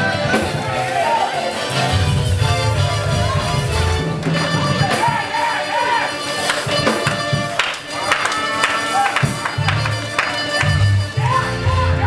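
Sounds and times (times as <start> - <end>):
people calling out: 0.0 - 1.9, 2.7 - 12.0
drums and cymbals: 0.0 - 12.0.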